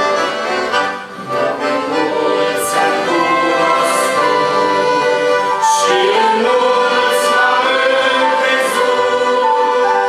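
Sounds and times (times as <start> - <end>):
accordion: 0.0 - 10.0
flute: 0.0 - 10.0
group singing a hymn in harmony: 1.1 - 10.0.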